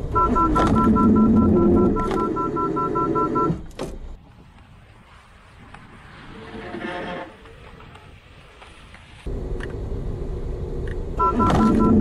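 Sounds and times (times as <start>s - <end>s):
two-tone warning beeps: 0.1s - 3.6s, 11.2s - 12.0s.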